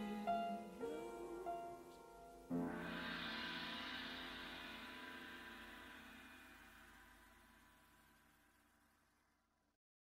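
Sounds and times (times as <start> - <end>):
music: 0.0 - 9.8.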